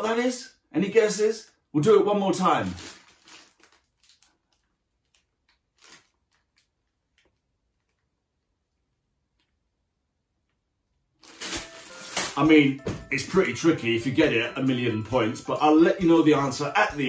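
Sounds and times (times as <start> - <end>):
plastic bag crinkling: 2.4 - 8.0, 11.2 - 12.5.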